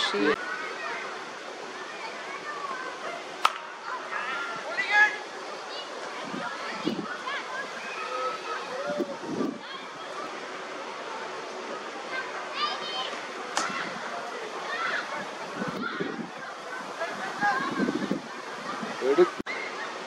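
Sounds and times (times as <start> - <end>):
outdoor hiss: 0.0 - 20.0
bat hitting ball knock: 3.4 - 3.7.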